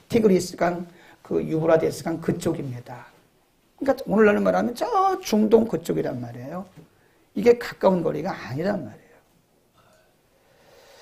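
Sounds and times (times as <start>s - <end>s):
faint soft in-breath: 0.9s - 1.3s, 6.9s - 7.3s, 9.8s - 11.0s.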